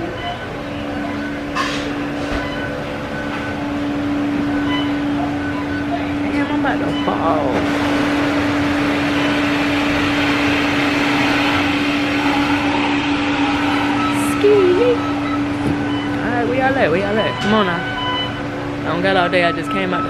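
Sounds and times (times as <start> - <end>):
steady machine hum: 0.0 - 20.0.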